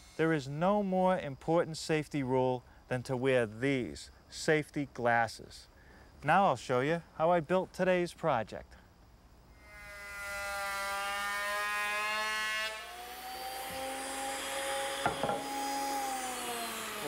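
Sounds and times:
planer cutting wood: 9.6s - 17.0s
thickness planer running: 10.1s - 17.0s
knocks: 15.0s - 15.5s.

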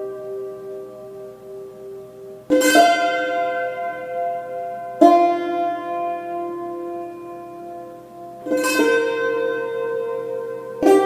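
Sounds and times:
hammered dulcimer chord ringing: 0.0s - 11.0s.

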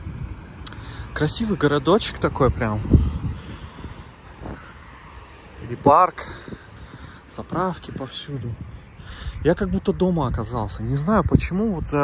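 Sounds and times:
distant road traffic: 0.0s - 12.0s
wind on microphone: 0.0s - 12.0s.

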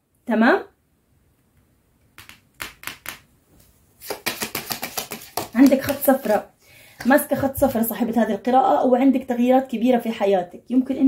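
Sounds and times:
cards tapping on table: 2.2s - 3.2s, 4.0s - 6.4s
cards rustling: 4.0s - 6.4s.

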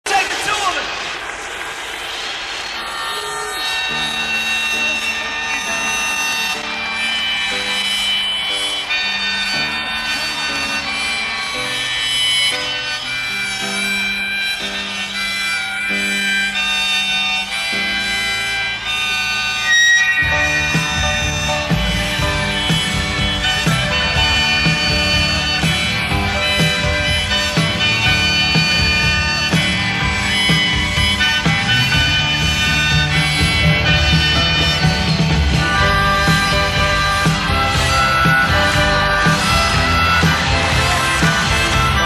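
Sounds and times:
rock band with drums: 0.0s - 42.0s
harmonica melody: 0.1s - 42.0s
sustained chords: 0.5s - 42.0s.

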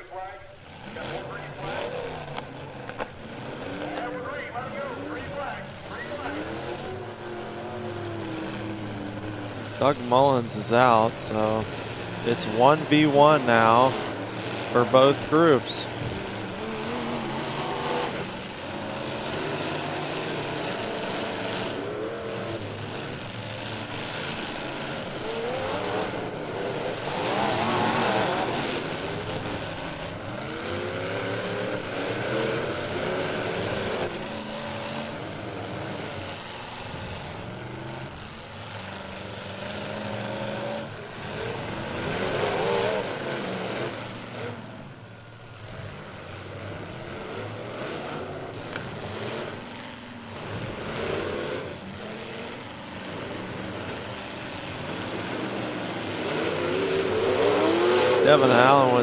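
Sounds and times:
car engines revving: 0.0s - 59.0s.

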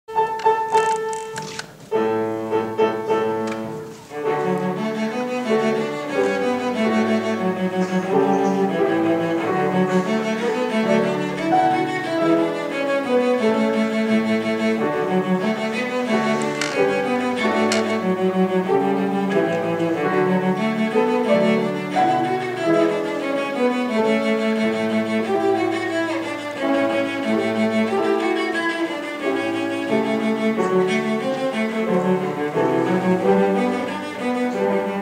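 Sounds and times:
bowed cello: 0.1s - 35.0s.

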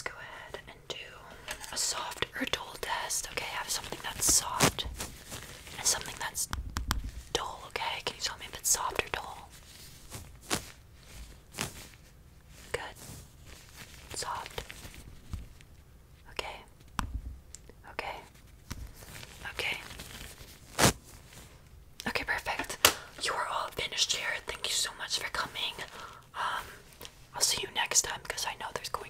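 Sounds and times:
close whispering: 0.0s - 4.9s, 5.8s - 6.5s, 7.3s - 9.5s, 12.7s - 13.0s, 14.1s - 14.6s, 16.2s - 16.7s, 17.8s - 18.3s, 22.0s - 29.0s
gloved hands rustling and tapping: 1.4s - 15.9s, 16.7s - 23.2s
brush brushing near microphone: 9.2s - 15.5s.

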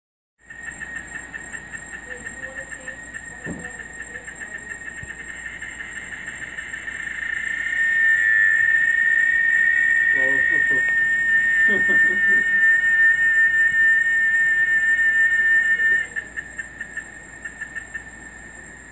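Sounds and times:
cicadas buzzing chorus: 0.4s - 18.9s.

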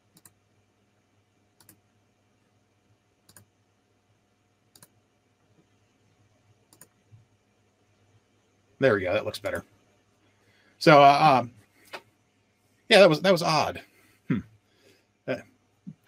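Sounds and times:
faint room hum: 0.0s - 16.0s
computer mouse clicks: 0.1s - 0.4s, 1.6s - 1.8s, 3.3s - 3.5s, 4.7s - 5.0s, 6.7s - 7.0s.

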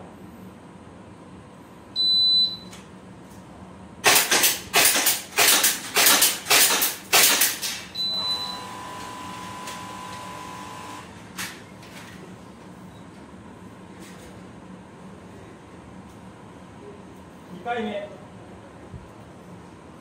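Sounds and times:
shot timer beep: 2.0s - 2.7s, 8.0s - 8.8s
airsoft pistol shots: 4.0s - 7.7s.

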